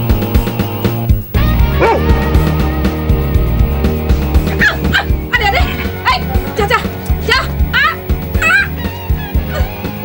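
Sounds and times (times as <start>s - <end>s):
background music with beat: 0.0s - 10.0s
dog crying: 1.8s - 2.3s.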